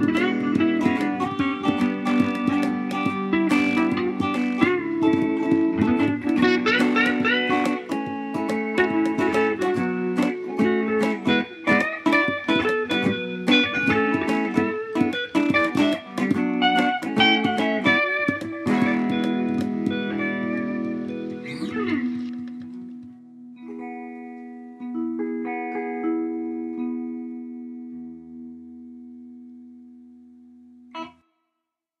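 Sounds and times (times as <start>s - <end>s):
picked guitar notes: 0.0s - 31.2s.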